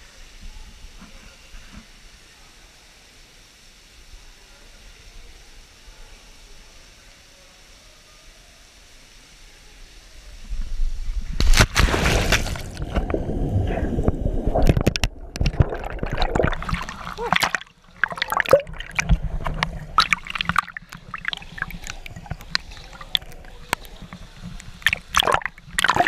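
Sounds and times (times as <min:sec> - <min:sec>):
loud splash into water: 0:11.4 - 0:13.1, 0:24.8 - 0:26.0
person surfacing with splashing: 0:11.4 - 0:24.0, 0:24.8 - 0:26.0
water churning and bubbling underwater: 0:12.1 - 0:26.0.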